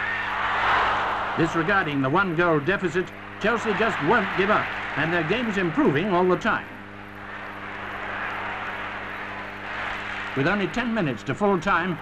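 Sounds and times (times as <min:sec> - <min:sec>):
low soundtrack hum: 0:00.0 - 0:12.0
stadium crowd noise: 0:00.0 - 0:12.0.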